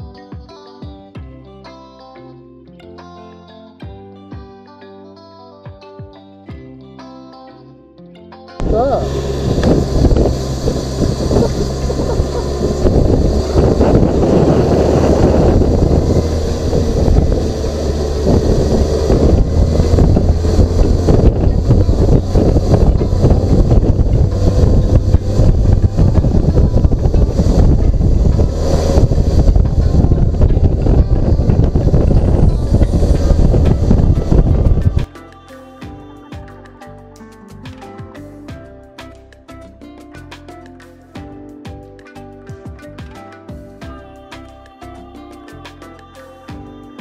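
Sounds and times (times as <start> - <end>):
motorcycle engine drone: 8.6 - 35.1
wind buffeting microphone: 8.6 - 35.1.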